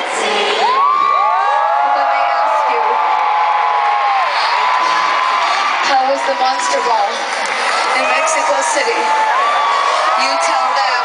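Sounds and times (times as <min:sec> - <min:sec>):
concert crowd cheering and screaming: 0:00.0 - 0:11.0.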